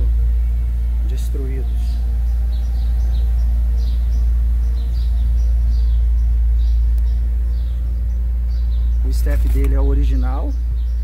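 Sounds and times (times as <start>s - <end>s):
low rumble: 0.0s - 11.0s
small birds chirping: 0.0s - 11.0s.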